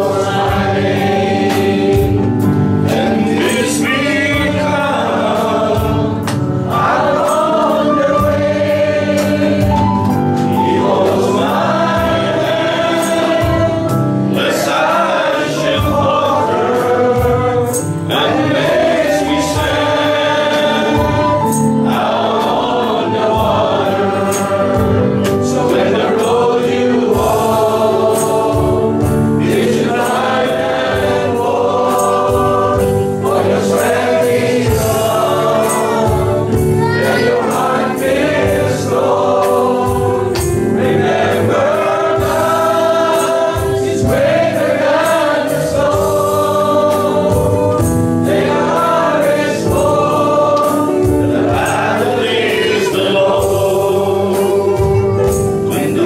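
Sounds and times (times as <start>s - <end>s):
congregation singing: 0.0s - 56.0s.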